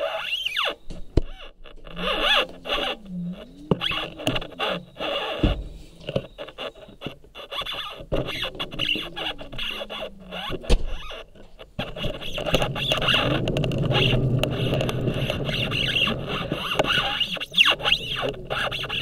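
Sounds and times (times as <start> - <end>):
scooter wheels rolling rumble: 0.0 - 19.0
rising and falling whine: 1.8 - 7.0, 11.8 - 19.0.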